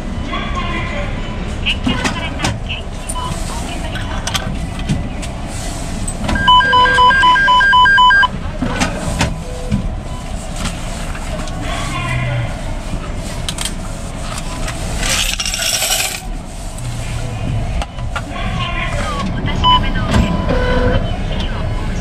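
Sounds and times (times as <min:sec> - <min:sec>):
cash machine beeping rapidly: 0:06.3 - 0:08.3
clicks and knocks from machine and coins: 0:15.0 - 0:16.3.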